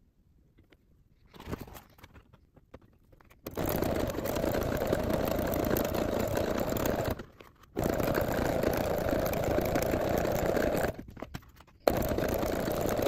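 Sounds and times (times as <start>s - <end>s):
electric sewing machine stitching: 3.5s - 7.2s, 7.8s - 11.1s, 11.8s - 13.0s.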